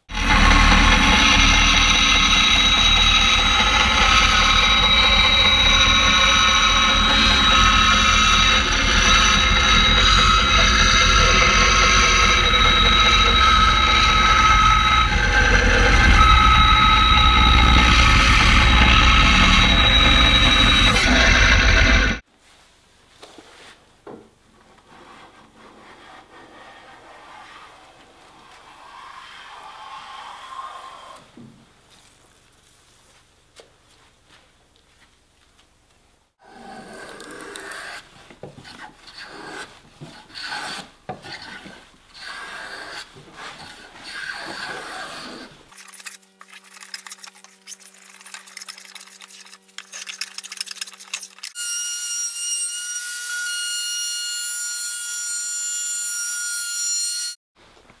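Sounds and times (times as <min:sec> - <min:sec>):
electric router whining: 0:00.1 - 0:22.2
hand plane scraping wood: 0:24.7 - 0:28.9, 0:36.5 - 0:45.7.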